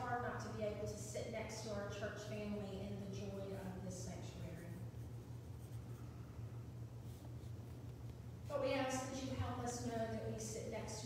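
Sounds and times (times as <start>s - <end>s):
woman speaking a prayer: 0.0s - 4.8s, 8.5s - 11.0s
steady low hum: 0.0s - 11.0s.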